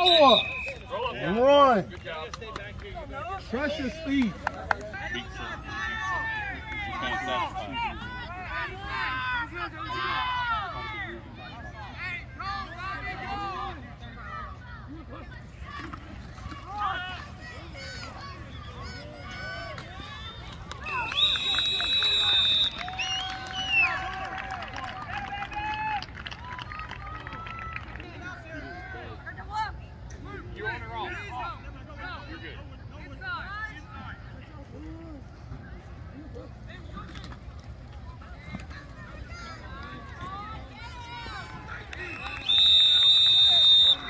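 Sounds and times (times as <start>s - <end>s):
referee's whistle: 0.0s - 1.1s, 20.8s - 23.7s, 42.0s - 44.0s.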